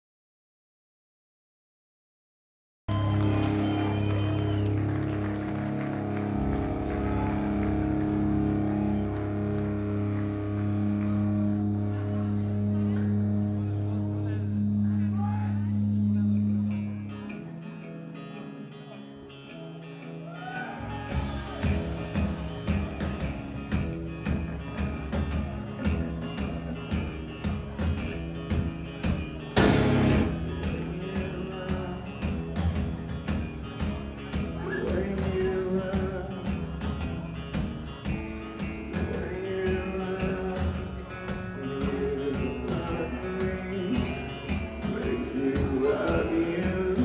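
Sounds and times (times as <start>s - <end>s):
drums: 2.9s - 13.2s, 20.3s - 47.0s
electric guitar: 2.9s - 47.0s
rock band droning low notes: 2.9s - 47.0s.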